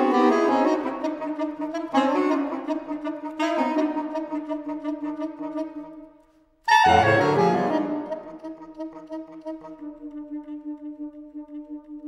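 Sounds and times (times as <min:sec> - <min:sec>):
saxophone quartet playing: 0:00.0 - 0:06.1, 0:06.7 - 0:11.9.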